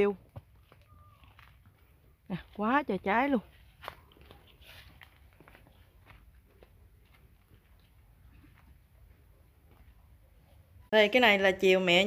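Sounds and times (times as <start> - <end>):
footsteps through grass and leaves: 0.4 - 10.0.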